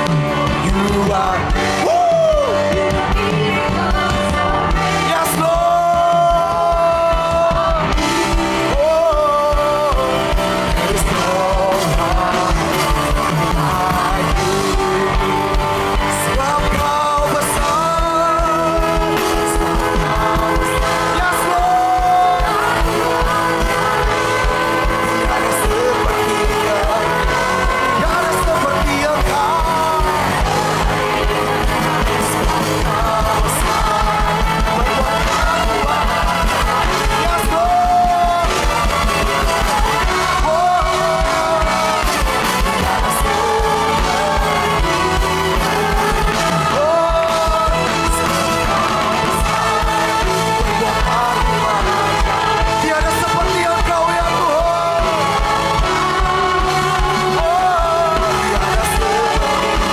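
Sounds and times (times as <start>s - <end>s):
band playing upbeat song: 0.0s - 59.9s
fast drum beat: 0.0s - 59.9s
group of voices singing: 0.0s - 59.9s.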